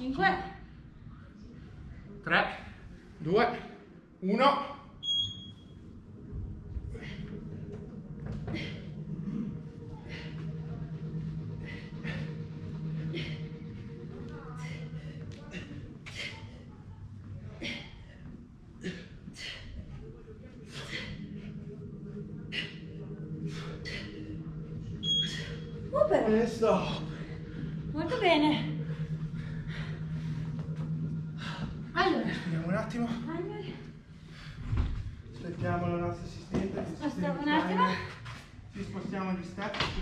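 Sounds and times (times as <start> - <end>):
electronic timer beep: 5.0 - 5.7, 25.0 - 25.6
low hum: 5.0 - 40.0
people breathing hard: 6.0 - 26.0, 26.6 - 35.4.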